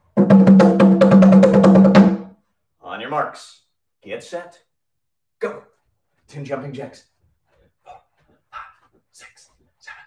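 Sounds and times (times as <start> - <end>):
conga drum roll: 0.1 - 2.3.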